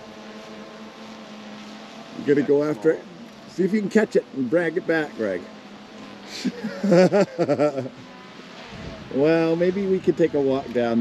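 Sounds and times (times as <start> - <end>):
man laughing: 6.3 - 8.1
wind rumble on microphone: 8.6 - 11.0.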